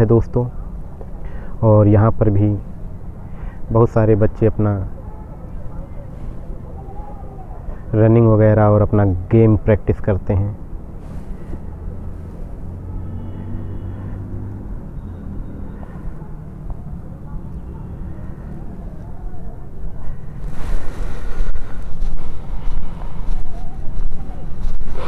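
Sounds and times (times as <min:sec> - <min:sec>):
distant traffic rumble: 0:00.0 - 0:25.0
faint engine hum: 0:00.0 - 0:25.0
wind buffeting microphone: 0:19.7 - 0:25.0.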